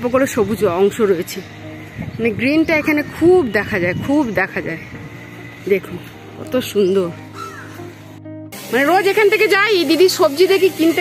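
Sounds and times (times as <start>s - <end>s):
background music: 0.0s - 11.0s
crow cawing: 7.3s - 7.9s.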